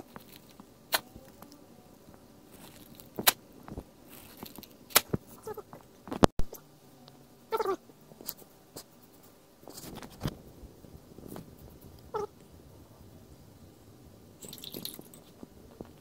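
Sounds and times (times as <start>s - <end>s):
plastic bag crinkling: 2.5s - 5.5s
short high vocal calls: 7.5s - 7.8s, 12.1s - 12.3s.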